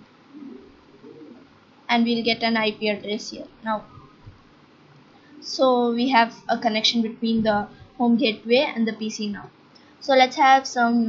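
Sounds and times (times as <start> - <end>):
faint low indistinct sounds: 0.0 - 11.0
person speaking: 0.4 - 4.3, 5.4 - 11.0.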